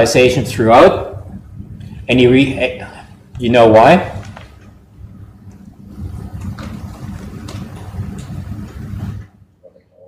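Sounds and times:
faint hum: 0:00.0 - 0:10.0
low room rumble: 0:00.0 - 0:10.0.

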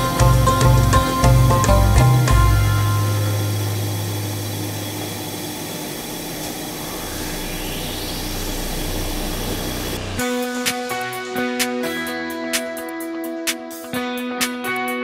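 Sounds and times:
music: 0:00.0 - 0:04.8, 0:06.9 - 0:15.0
helicopter turbine engine whine: 0:02.7 - 0:11.7.

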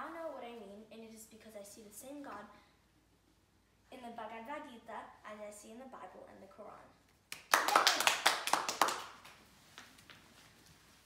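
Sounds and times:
audience clapping: 0:07.3 - 0:09.4.

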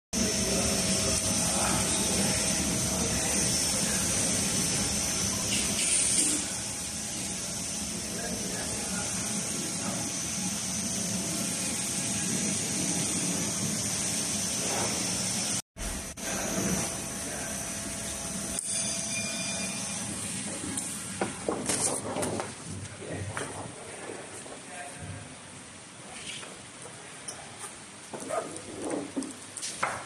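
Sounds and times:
printer machine hum and hiss: 0:00.2 - 0:25.2.

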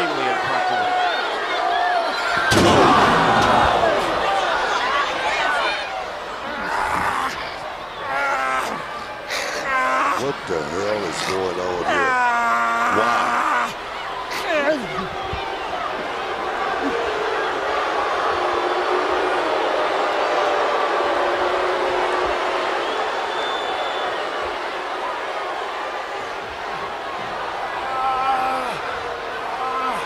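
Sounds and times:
crowd din of many voices: 0:00.0 - 0:30.0.

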